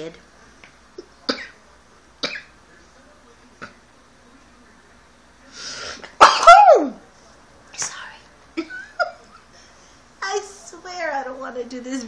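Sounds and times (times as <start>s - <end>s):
woman sneezing: 6.2s - 7.0s.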